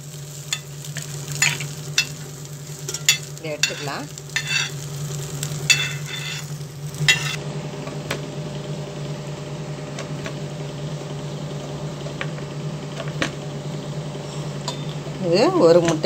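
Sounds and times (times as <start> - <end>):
steady low hum: 0.0 - 16.0
ladle scraping on iron griddle: 0.4 - 7.4.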